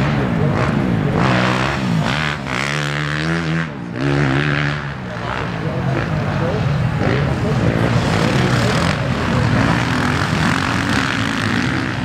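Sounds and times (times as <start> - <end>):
motocross bike engines revving: 0.0 - 12.0.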